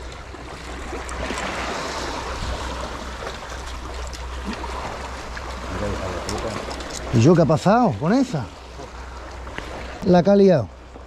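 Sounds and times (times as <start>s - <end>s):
sea water sloshing between blocks: 0.0s - 10.0s.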